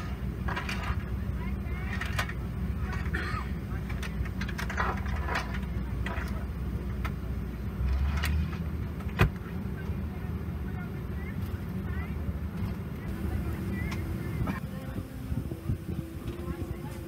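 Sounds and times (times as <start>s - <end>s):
passengers murmuring: 0.0s - 7.8s, 9.0s - 17.0s
airliner cabin ventilation hum: 0.0s - 17.0s.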